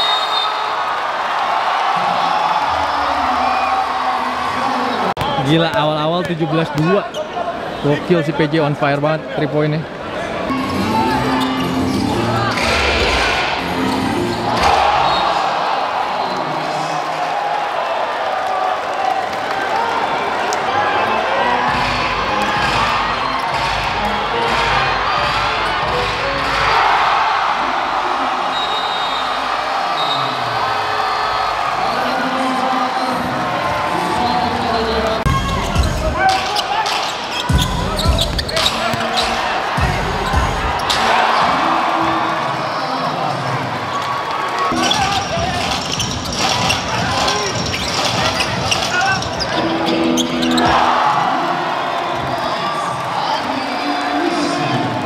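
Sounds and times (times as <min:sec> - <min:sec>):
crowd noise: 0:00.0 - 0:55.0
basketball bouncing on court: 0:37.3 - 0:41.6.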